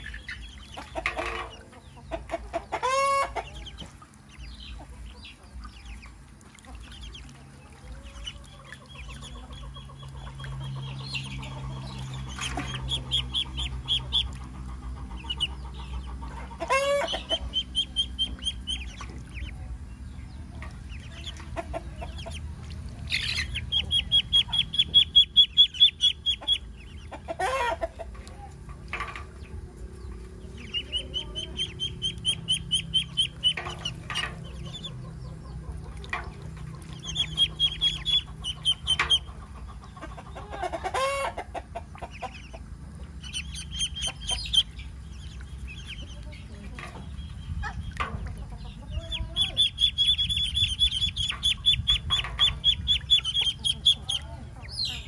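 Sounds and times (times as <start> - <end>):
ducklings peeping: 0.0 - 55.0.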